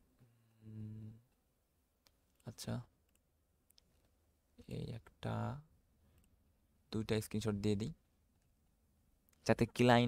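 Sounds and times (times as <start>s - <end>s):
person speaking: 2.3s - 3.1s, 4.5s - 5.7s, 6.9s - 8.0s.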